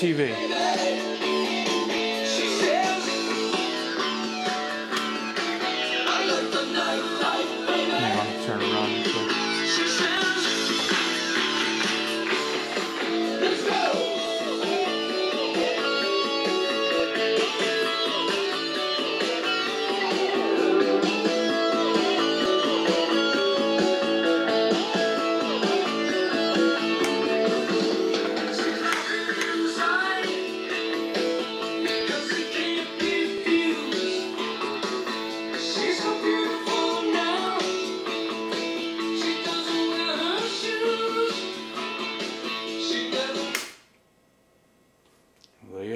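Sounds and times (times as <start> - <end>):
guitar music from a radio: 0.0 - 43.8.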